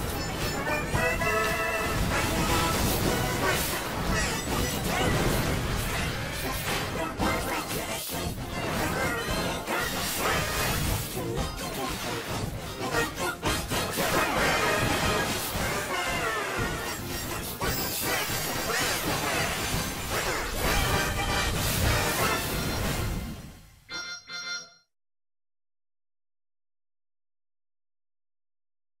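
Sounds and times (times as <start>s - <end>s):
animated series theme song: 0.0s - 24.8s.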